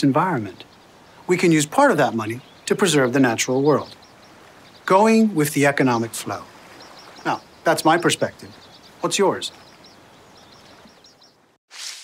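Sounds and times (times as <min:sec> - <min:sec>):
bird chirps: 0:00.0 - 0:11.6.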